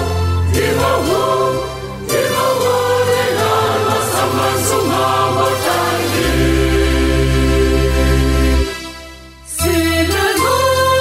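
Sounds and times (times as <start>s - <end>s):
choir singing a hymn: 0.0s - 8.8s, 9.6s - 11.0s.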